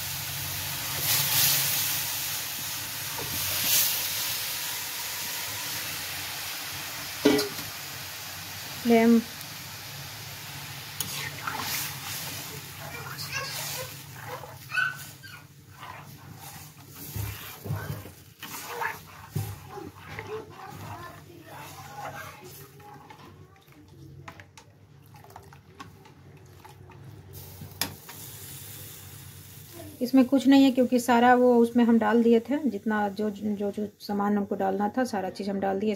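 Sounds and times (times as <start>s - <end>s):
metal ladle scraping a pan: 11.0s - 23.4s
liquid sloshing: 11.1s - 27.3s.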